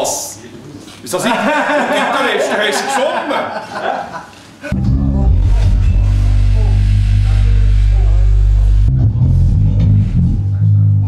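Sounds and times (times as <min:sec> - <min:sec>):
loud band music with bass and guitar: 0:04.7 - 0:11.0.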